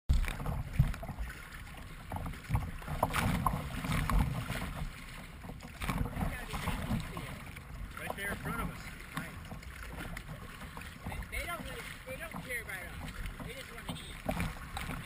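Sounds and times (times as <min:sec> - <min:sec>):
water slapping against kayak: 0:00.1 - 0:15.0.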